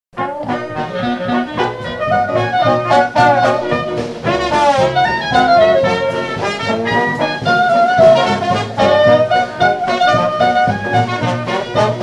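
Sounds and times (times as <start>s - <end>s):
jazz band playing live: 0.2s - 12.0s
trombone: 0.2s - 12.0s.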